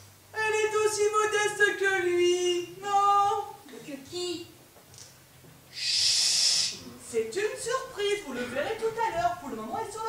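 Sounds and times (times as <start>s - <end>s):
person hissing shh: 5.7s - 6.9s.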